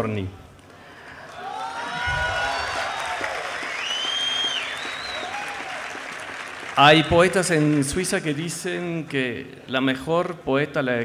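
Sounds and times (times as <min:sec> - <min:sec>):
large audience applauding: 0:01.0 - 0:08.8
calls from audience: 0:01.2 - 0:07.4.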